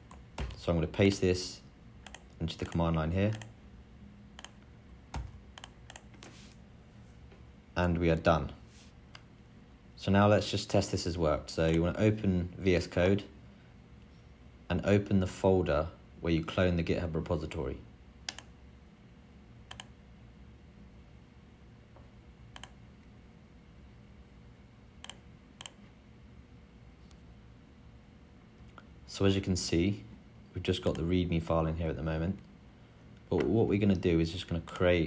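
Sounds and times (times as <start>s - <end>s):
faint low hum: 0.0s - 35.0s
computer keyboard clicks: 2.0s - 3.5s, 4.4s - 6.1s.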